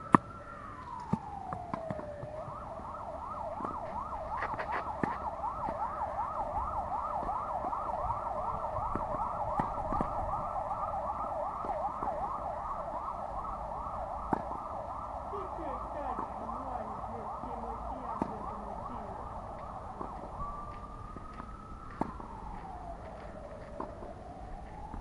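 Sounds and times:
emergency siren yelping: 0.0s - 25.0s.

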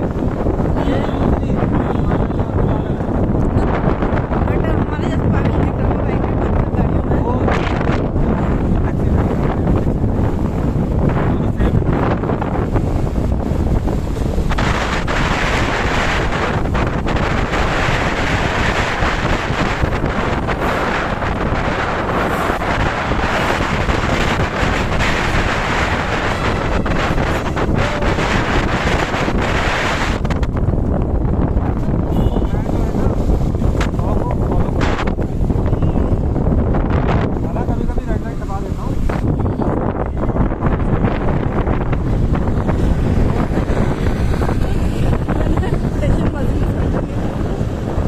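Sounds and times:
road and traffic noise: 0.0s - 48.0s
wind rushing over microphone: 0.0s - 48.0s.

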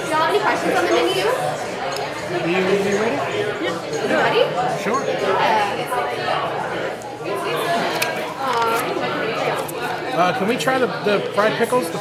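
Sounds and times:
restaurant chatter: 0.0s - 12.0s.

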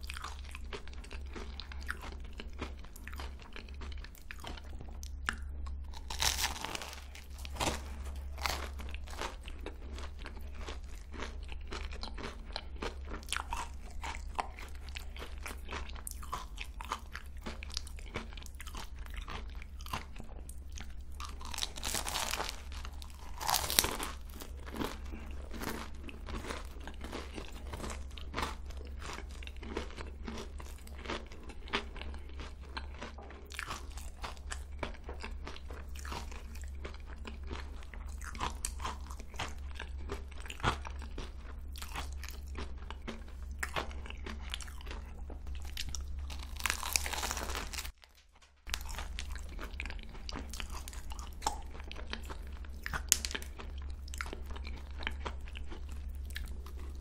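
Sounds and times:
chewing crunchy pastry: 0.0s - 57.0s.

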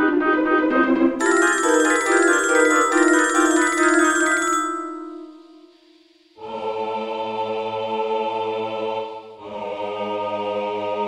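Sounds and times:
rapid high notes: 1.2s - 5.6s
held chords: 1.2s - 5.8s.

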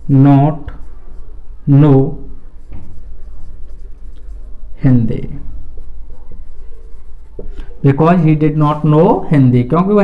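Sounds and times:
marker scratching on whiteboard: 0.0s - 9.0s
steady low hum: 0.0s - 10.0s
man talking: 1.7s - 2.2s, 4.8s - 5.4s, 7.8s - 10.0s.

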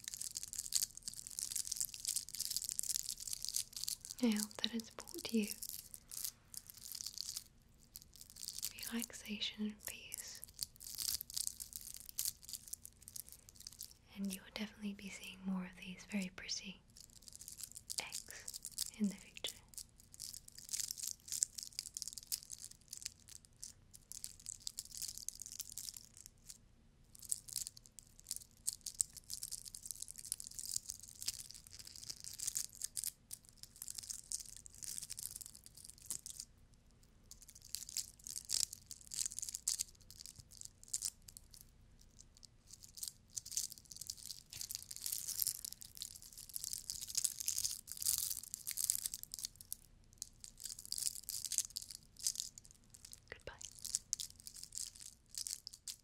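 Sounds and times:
glitter decorations scratching: 0.0s - 26.6s, 27.2s - 36.5s, 37.3s - 49.6s, 50.2s - 56.0s.

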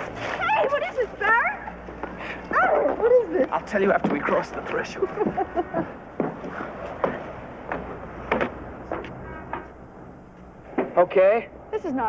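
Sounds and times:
footsteps walking: 0.0s - 10.9s.

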